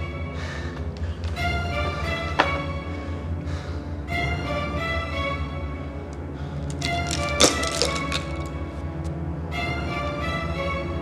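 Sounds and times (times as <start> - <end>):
film score music: 0.0 - 11.0.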